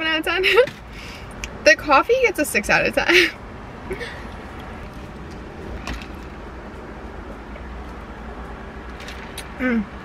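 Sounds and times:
car cabin low rumble: 0:00.0 - 0:10.0.

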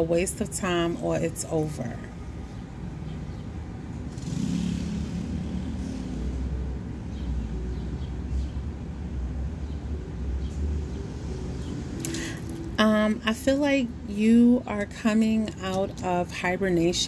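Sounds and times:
motorcycle engine running: 0:04.0 - 0:08.6.

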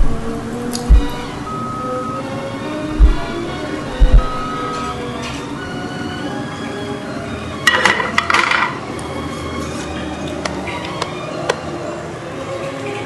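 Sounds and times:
light clicks: 0:00.0 - 0:01.5
utensils clattering against cookware: 0:07.7 - 0:08.8.

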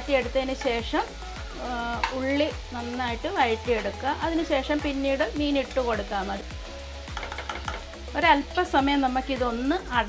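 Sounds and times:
food sizzling in oil: 0:00.0 - 0:10.0
utensil stirring in pan: 0:00.1 - 0:08.1.

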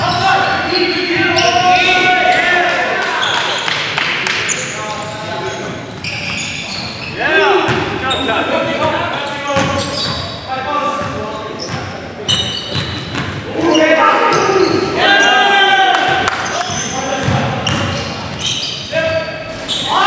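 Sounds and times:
players' voices echoing: 0:00.0 - 0:20.0.

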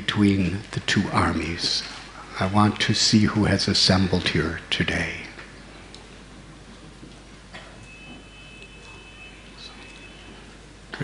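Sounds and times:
quiet hall noise: 0:00.0 - 0:11.0
faint high-pitched tone: 0:07.8 - 0:10.6.

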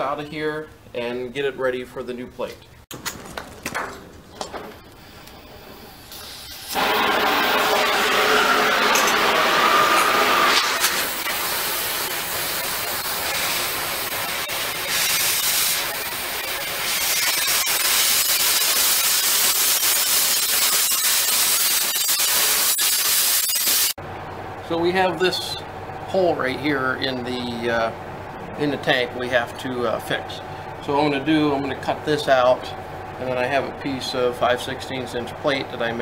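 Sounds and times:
cutting torch hissing: 0:04.9 - 0:24.0.

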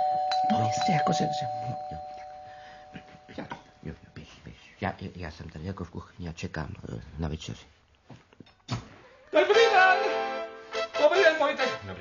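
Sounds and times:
two-tone doorbell chime: 0:00.0 - 0:03.4.

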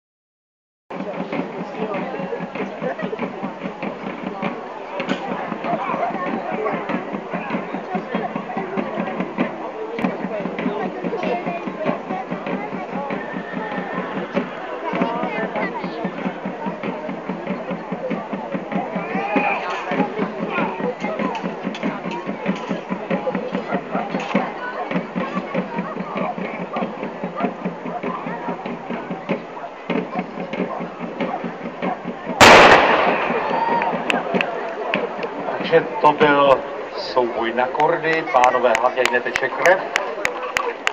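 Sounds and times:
crowd chatter: 0:00.9 - 0:40.9
loud black-powder bang: 0:32.4 - 0:34.0.

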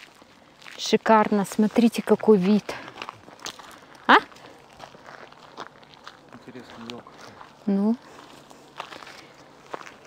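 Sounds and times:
footsteps on forest path: 0:00.0 - 0:10.0.

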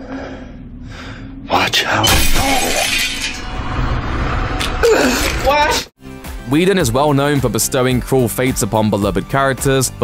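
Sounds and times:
glass shattering: 0:02.0 - 0:03.5.

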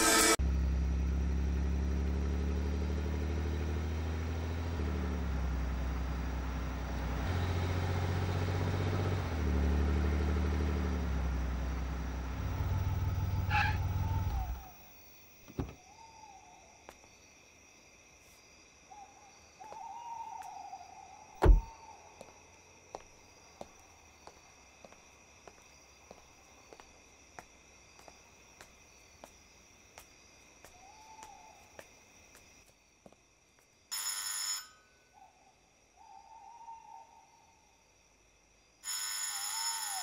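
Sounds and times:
sharp knock: 0:21.4 - 0:21.7
soft thump: 0:21.4 - 0:21.7.

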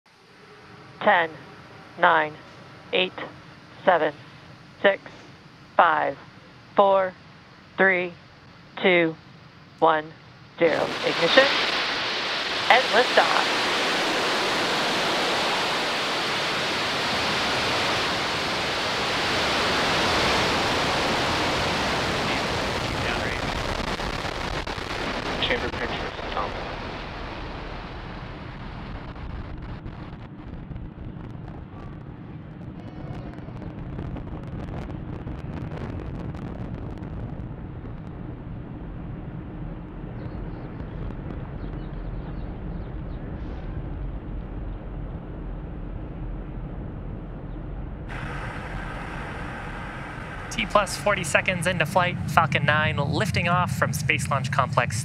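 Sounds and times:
rocket engines roaring: 0:00.2 - 0:55.0.

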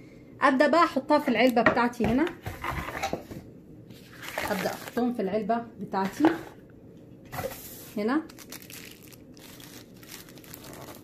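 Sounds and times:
plastic bag crinkling: 0:04.2 - 0:05.1, 0:07.4 - 0:11.0.

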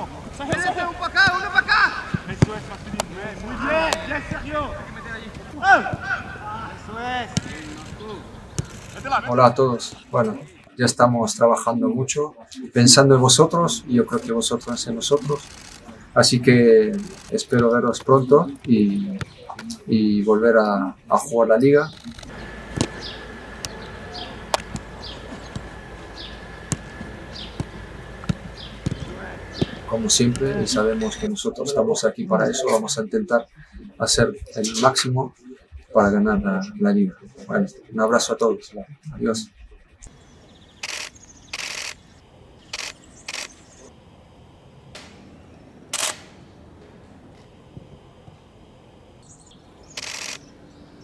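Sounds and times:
low steady background noise: 0:00.0 - 0:51.0
boots kicking football: 0:02.0 - 0:03.2, 0:22.7 - 0:23.1, 0:26.6 - 0:30.6
short sharp noise bursts: 0:07.3 - 0:09.4, 0:40.1 - 0:43.9, 0:44.9 - 0:46.7, 0:47.5 - 0:50.6
bird chirping: 0:21.7 - 0:31.3, 0:39.6 - 0:43.9, 0:48.1 - 0:51.0.

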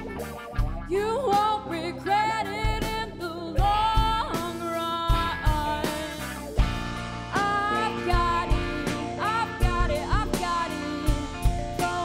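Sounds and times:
live rock band playing: 0:00.0 - 0:12.0
woman singing: 0:00.9 - 0:06.4, 0:07.3 - 0:12.0.

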